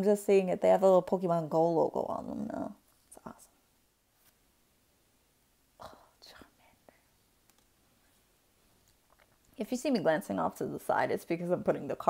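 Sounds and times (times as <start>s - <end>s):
woman whispering: 5.8s - 7.1s.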